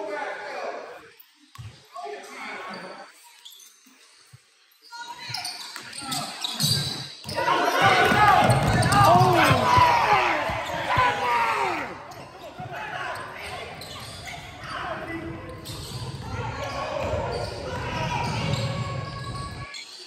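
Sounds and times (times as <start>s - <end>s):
voices echoing in gym: 0.0s - 20.0s.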